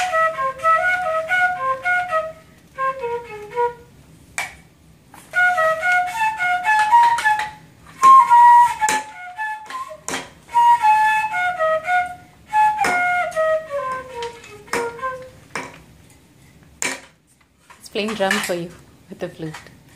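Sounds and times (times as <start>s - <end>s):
bamboo flute playing: 0.0s - 4.0s, 5.2s - 15.5s
sharp knocks on bamboo flute: 6.8s - 10.4s, 12.8s - 13.4s, 14.0s - 15.8s.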